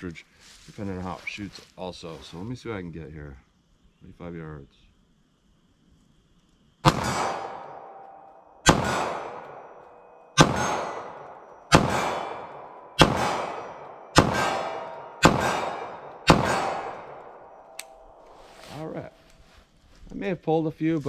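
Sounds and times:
pistol shots with echo: 6.8 - 18.2.

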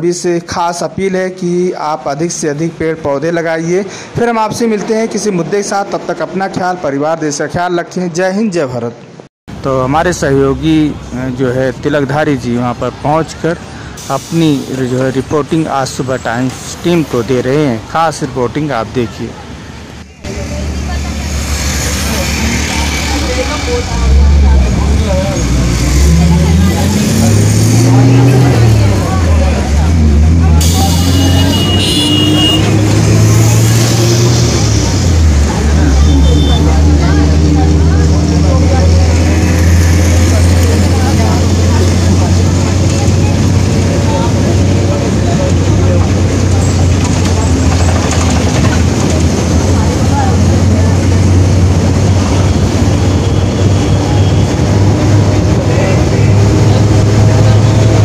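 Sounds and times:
vehicle engine running: 34.5 - 58.0.

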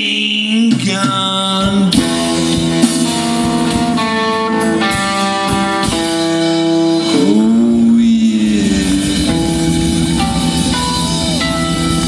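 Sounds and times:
bass guitar: 0.0 - 12.0
drum kit steady beat: 0.0 - 12.0
electric guitar: 0.0 - 12.0
person singing: 7.0 - 11.6.

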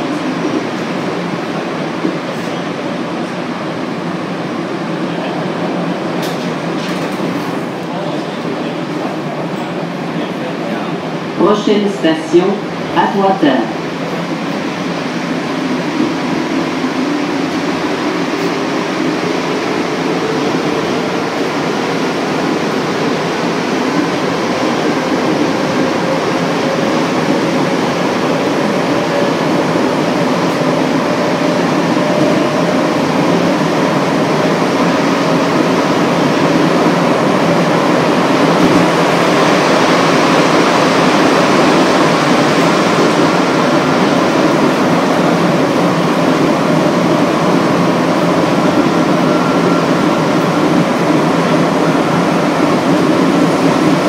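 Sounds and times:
train rolling rumble: 0.0 - 54.0.

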